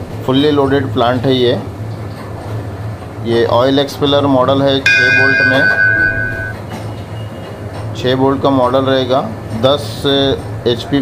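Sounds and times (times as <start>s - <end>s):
high ringing tone: 4.9s - 6.6s.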